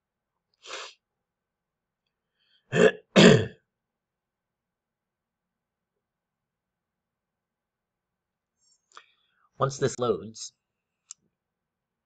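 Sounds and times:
man clearing his throat: 2.7s - 3.6s.

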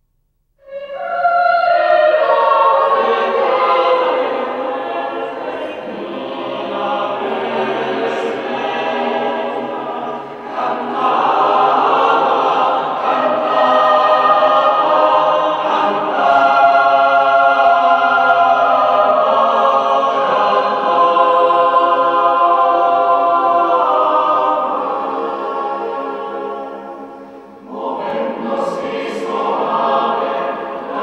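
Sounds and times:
choir singing sustained chords: 0.6s - 31.0s.

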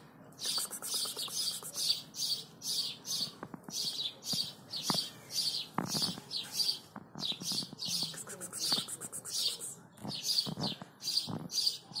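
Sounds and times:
songbirds chirping: 0.0s - 12.0s.

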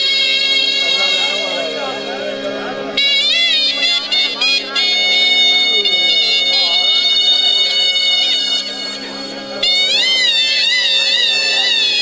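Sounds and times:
reed pipes playing wailing melody: 0.0s - 12.0s
steady drone: 0.0s - 12.0s.

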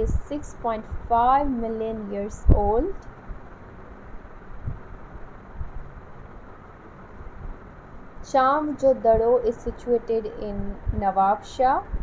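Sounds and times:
background hiss and rumble: 0.0s - 12.0s.

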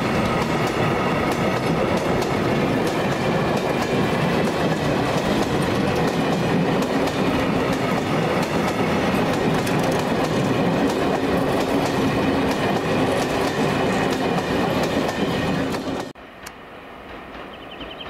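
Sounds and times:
wheels clacking over track: 0.0s - 16.1s
train wheels rumbling on rail: 0.0s - 18.0s.

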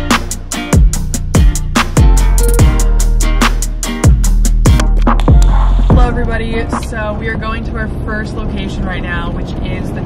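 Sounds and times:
car road and engine hum: 4.9s - 10.0s
young woman talking: 6.0s - 10.0s.

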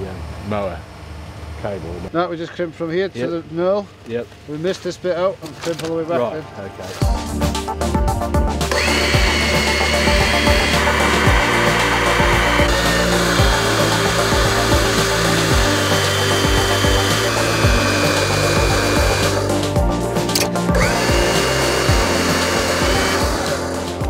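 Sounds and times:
background music: 5.9s - 24.0s
hydraulic pump whining: 8.6s - 24.0s.

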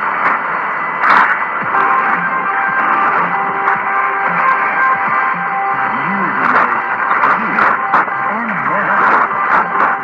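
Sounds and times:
radio music: 0.0s - 10.0s
radio static: 0.0s - 10.0s
weak radio voice: 4.3s - 10.0s.

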